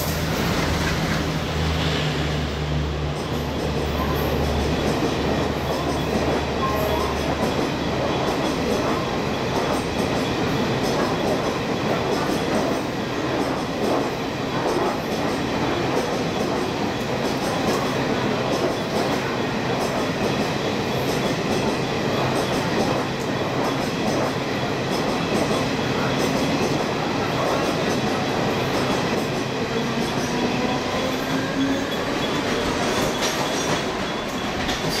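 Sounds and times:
train wheels rumbling on rails: 0.0s - 35.0s.

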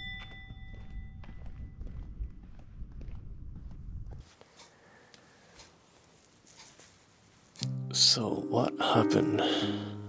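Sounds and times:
bell-like chime: 0.0s - 1.2s
footsteps: 0.0s - 4.8s
low rumble: 0.7s - 4.2s.

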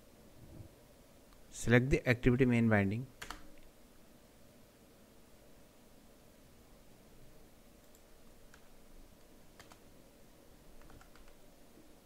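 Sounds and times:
keyboard keystrokes: 9.6s - 9.8s, 10.8s - 11.4s.

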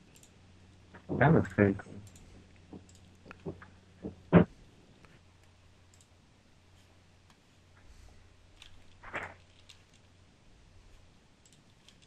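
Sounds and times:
faint low hum: 0.0s - 12.0s
computer mouse clicks: 0.1s - 0.4s, 2.0s - 3.7s, 4.4s - 6.2s, 8.5s - 10.1s, 10.9s - 12.0s.

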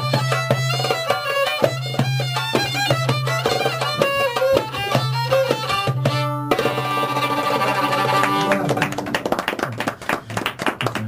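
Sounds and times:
violin holding a note: 0.0s - 9.3s
people clapping: 6.9s - 11.0s.

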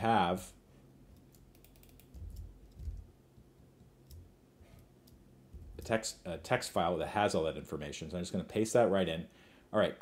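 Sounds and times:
keyboard and mouse clicks: 1.1s - 5.9s.

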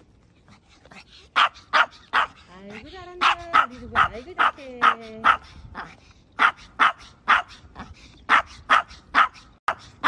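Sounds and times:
small dog barking: 1.3s - 2.4s, 3.2s - 10.0s.

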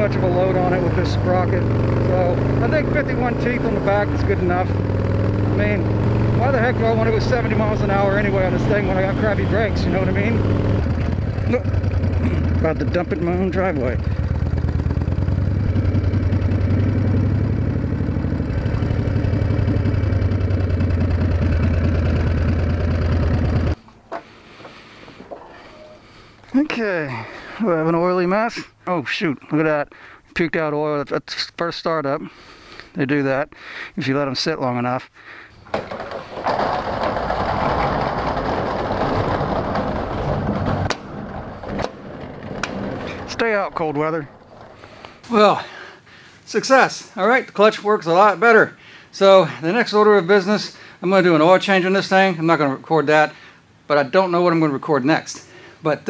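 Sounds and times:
motorcycle engine running: 0.0s - 23.8s, 35.8s - 45.2s
metal roll-up door rolling: 6.4s - 14.6s, 35.6s - 45.4s.

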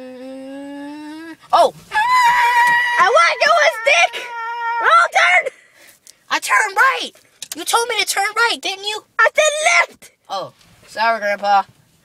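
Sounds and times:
short voice sounds: 0.0s - 1.8s
high-pitched vocal squeal: 0.0s - 5.5s.

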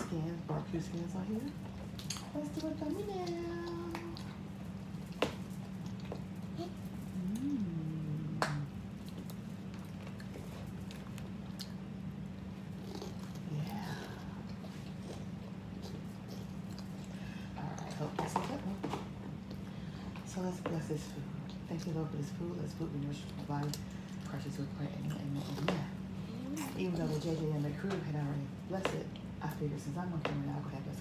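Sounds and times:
children chewing and munching: 0.0s - 20.3s, 21.0s - 28.2s
steady low hum: 0.0s - 31.0s
short hummed voice: 6.5s - 9.0s, 26.2s - 26.9s.

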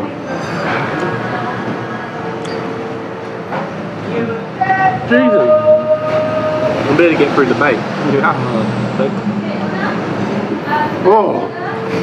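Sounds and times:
motor vehicle passing: 5.5s - 11.0s.

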